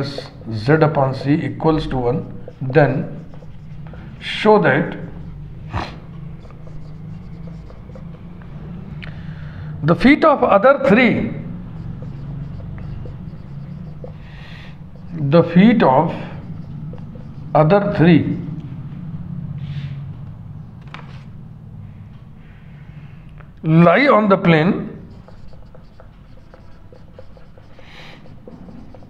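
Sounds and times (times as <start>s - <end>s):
marker pen writing on whiteboard: 0.0s - 19.1s, 24.0s - 29.0s
steady low hum: 0.0s - 29.0s.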